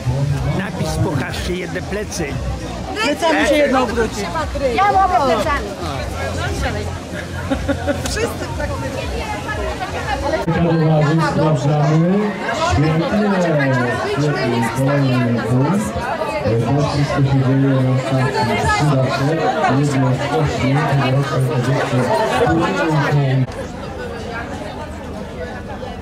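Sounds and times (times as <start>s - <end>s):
faint background talk: 0.0s - 26.0s
women chattering: 0.5s - 26.0s.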